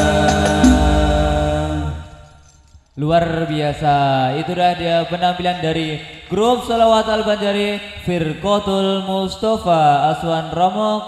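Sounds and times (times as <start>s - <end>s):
male voices chanting: 0.0s - 2.3s.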